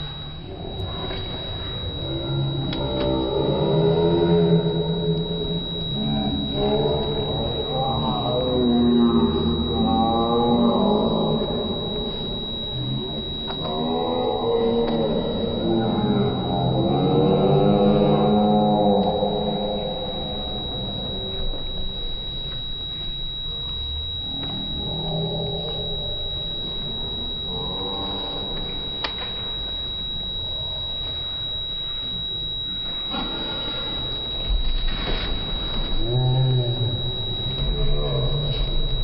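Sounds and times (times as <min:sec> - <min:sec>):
slowed-down voices: 0:00.0 - 0:39.0
thin high whine: 0:00.0 - 0:39.0.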